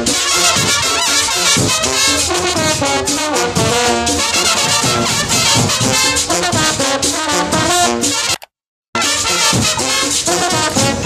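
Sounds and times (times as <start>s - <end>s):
marching band brass playing: 0.0s - 8.4s, 9.0s - 11.0s.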